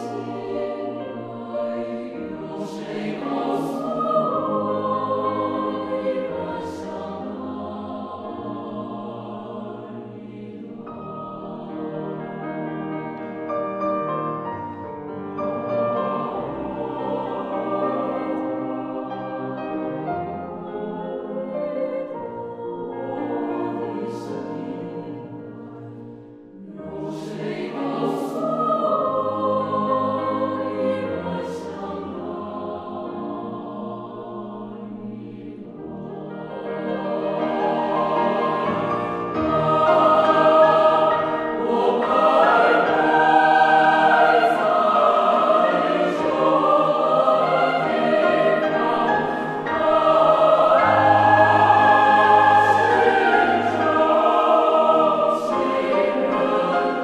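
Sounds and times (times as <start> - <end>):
choir singing held chords: 0.0 - 13.5, 14.1 - 57.0
grand piano accompaniment: 0.0 - 57.0.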